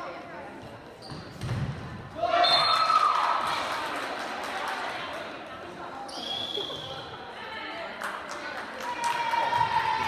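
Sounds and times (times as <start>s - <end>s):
referee's whistle: 2.4s - 2.9s, 6.1s - 7.0s.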